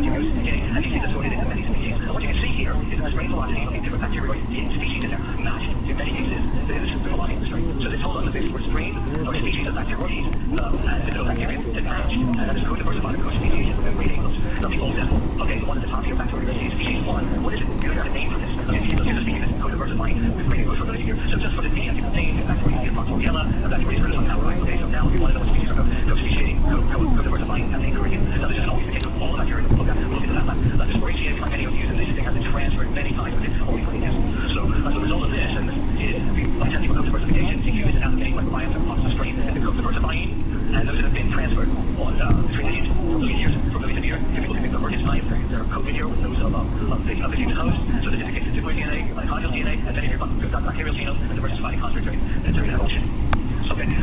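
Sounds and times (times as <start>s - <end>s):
indistinct voices: 0.0s - 54.0s
loud low rumble: 0.0s - 54.0s.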